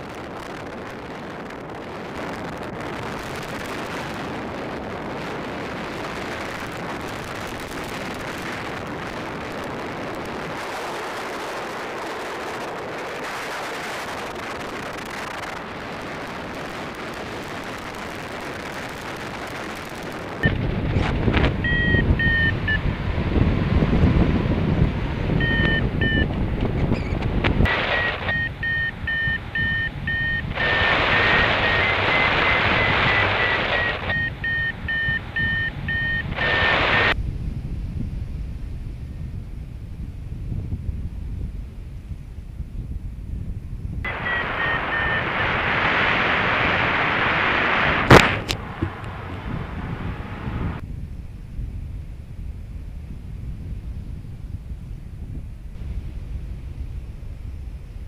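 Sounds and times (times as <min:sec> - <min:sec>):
wind rushing over microphone: 0:00.0 - 0:58.0
variometer beeping: 0:20.4 - 0:20.6, 0:21.6 - 0:22.8, 0:25.4 - 0:26.4, 0:27.7 - 0:37.2, 0:44.1 - 0:45.4.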